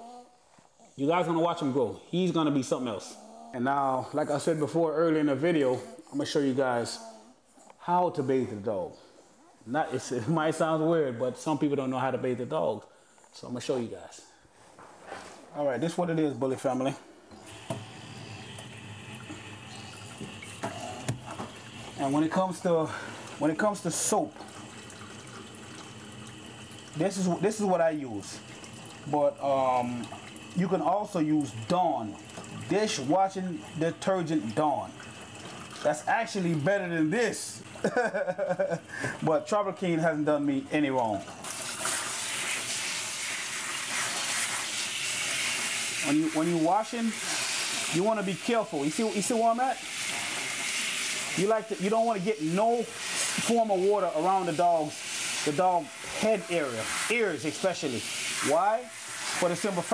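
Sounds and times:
faucet water running into sink: 0:17.4 - 0:36.7, 0:40.8 - 0:59.9.

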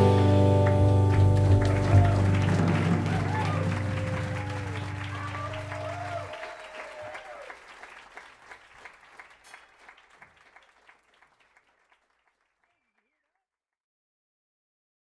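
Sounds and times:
jazz trio held low note: 0:00.0 - 0:06.1
audience applauding and cheering: 0:00.0 - 0:12.8.

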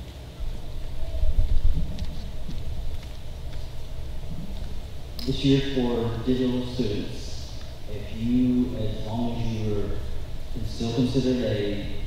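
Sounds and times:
microphone handling rumble: 0:00.4 - 0:12.0.

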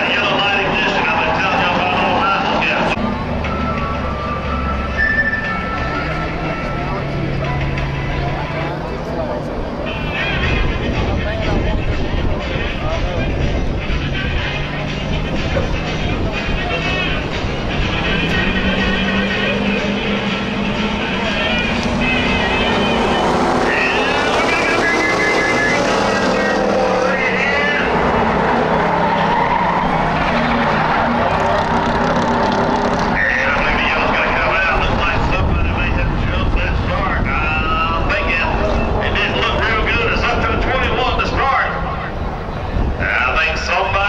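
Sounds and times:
racing car engines: 0:00.0 - 0:44.0.

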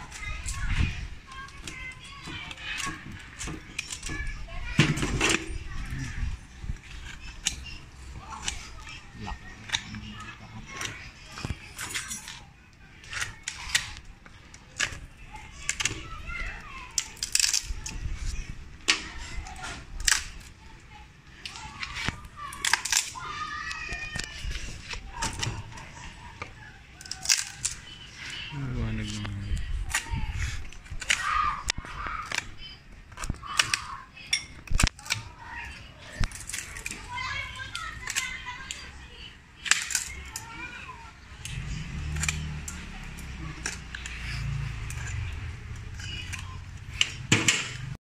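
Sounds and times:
children chattering and playing: 0:00.0 - 0:48.0
cutters cracking wood: 0:13.0 - 0:20.6, 0:21.4 - 0:26.1, 0:27.0 - 0:28.5, 0:29.6 - 0:34.0, 0:34.6 - 0:38.9, 0:39.6 - 0:48.0
cutters clicking into deadwood: 0:41.4 - 0:48.0.

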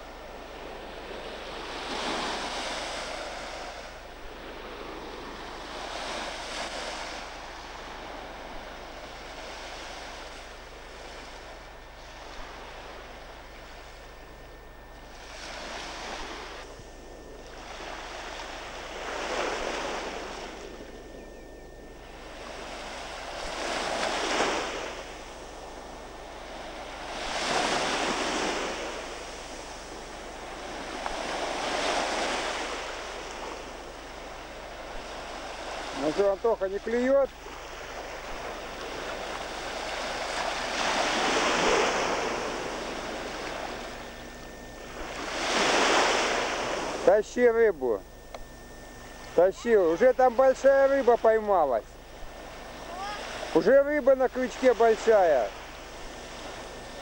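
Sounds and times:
waves washing up sandy shore: 0:00.0 - 0:14.2, 0:15.0 - 0:21.1, 0:22.0 - 0:57.0.

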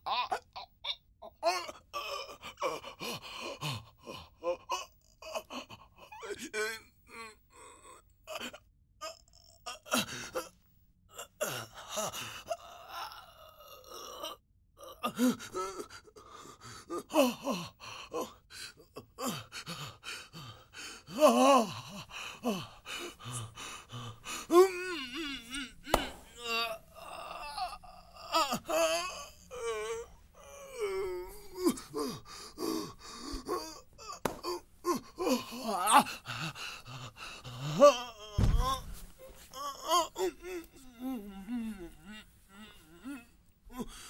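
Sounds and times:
man sobbing: 0:00.0 - 0:44.0.

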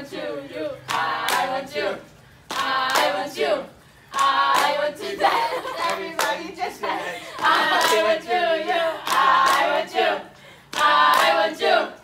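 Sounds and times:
hand clapping: 0:02.5 - 0:03.2, 0:05.8 - 0:06.5, 0:09.0 - 0:09.8, 0:10.7 - 0:11.4.

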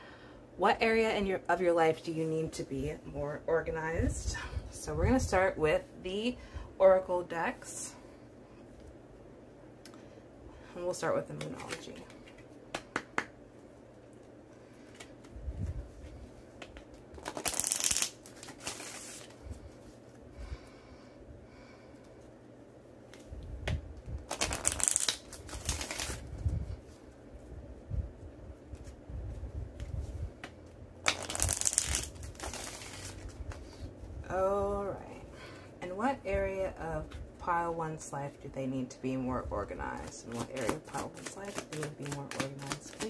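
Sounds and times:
cards being shuffled: 0:11.3 - 0:13.3, 0:14.0 - 0:19.4, 0:23.1 - 0:26.4, 0:28.7 - 0:33.8, 0:39.8 - 0:43.0
soft handling of cards: 0:11.3 - 0:20.3, 0:21.9 - 0:34.3, 0:39.7 - 0:43.0.

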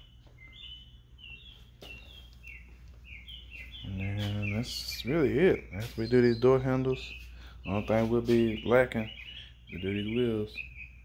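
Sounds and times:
bird chirping: 0:00.0 - 0:11.0.

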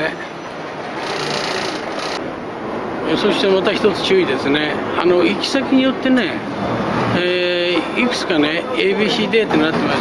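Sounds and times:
high mechanical rattle: 0:00.9 - 0:02.2.

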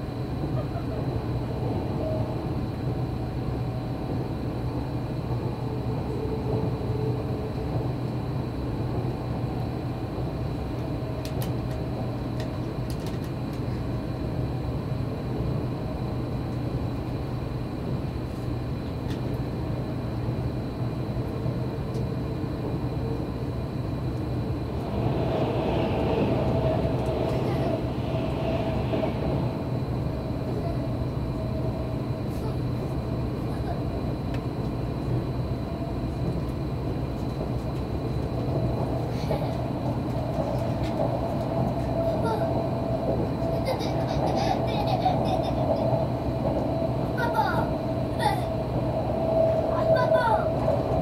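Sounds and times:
steady humming tone: 0:00.0 - 0:51.0
train running rumble and hum: 0:00.0 - 0:51.0.

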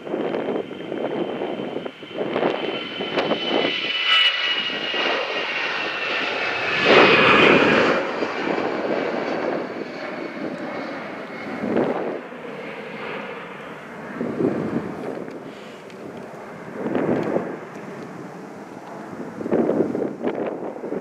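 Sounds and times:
airliner engines whining: 0:00.0 - 0:21.0.

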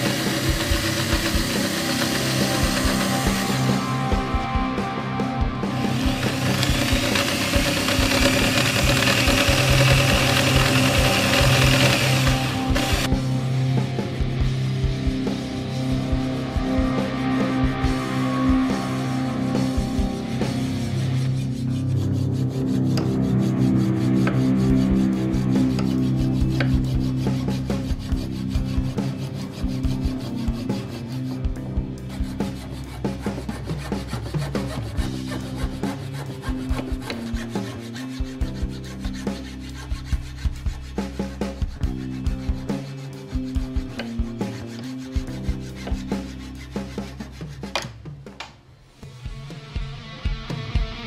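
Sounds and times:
hand hacksaw cutting wood: 0:00.0 - 0:03.6, 0:05.9 - 0:13.1, 0:32.2 - 0:42.8, 0:43.5 - 0:47.8
background guitar-like music: 0:00.0 - 0:48.0, 0:49.0 - 0:51.0.

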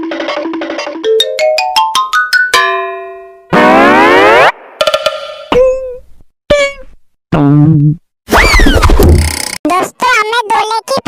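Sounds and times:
sliding cartoon whistle: 0:08.3 - 0:09.0.

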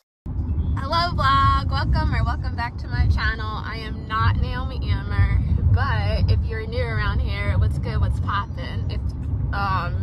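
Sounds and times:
car road rumble: 0:00.3 - 0:10.0
woman talking: 0:00.8 - 0:10.0.

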